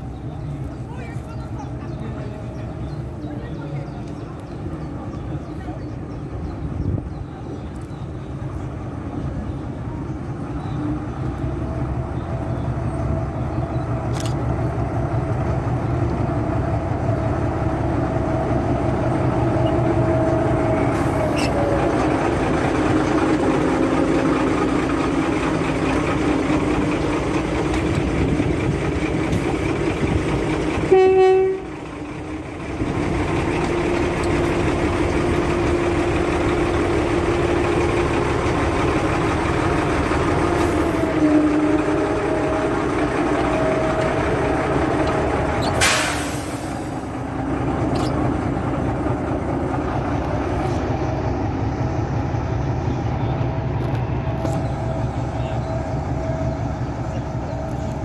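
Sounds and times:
diesel locomotive running: 0.0s - 58.0s
locomotive horn blast: 30.9s - 31.8s, 40.6s - 42.8s
brief hiss: 45.7s - 47.0s.

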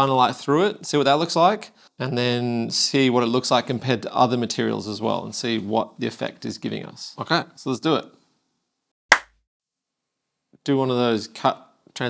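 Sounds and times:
hand clap: 9.1s - 9.4s.

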